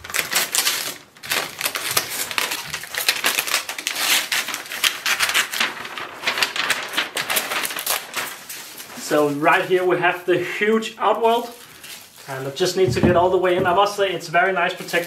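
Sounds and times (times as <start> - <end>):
packing paper crinkling and tearing: 0.0 - 15.0.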